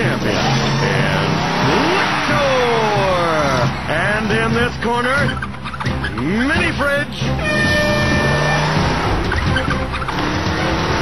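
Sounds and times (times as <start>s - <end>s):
music: 0.0s - 11.0s
robots mechanical engine noise: 7.6s - 11.0s.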